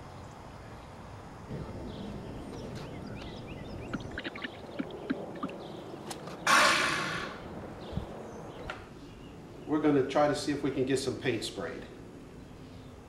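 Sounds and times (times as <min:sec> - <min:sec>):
faint bird chirps: 0:01.5 - 0:06.0
loud hiss: 0:06.4 - 0:07.5.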